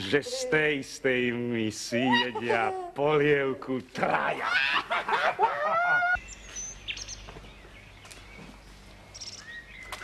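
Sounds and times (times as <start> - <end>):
birds chirping: 5.8 - 10.0.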